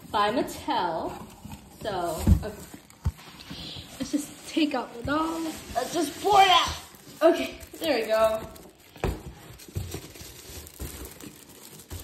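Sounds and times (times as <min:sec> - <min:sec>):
cardboard packaging rustling: 0:00.0 - 0:12.0.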